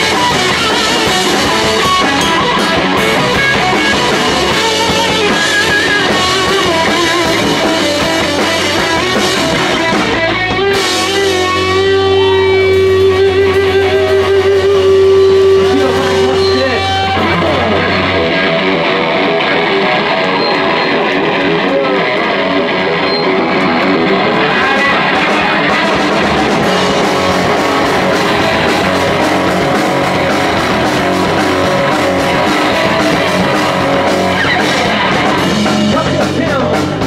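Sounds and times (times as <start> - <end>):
electric guitar: 0.0 - 37.0
rock band playing live: 0.0 - 37.0.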